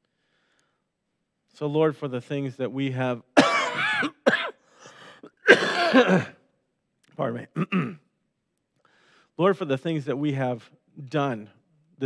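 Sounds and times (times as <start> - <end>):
faint breath: 0.0 - 0.9, 8.8 - 9.4
man coughing: 3.4 - 6.4, 7.6 - 8.0.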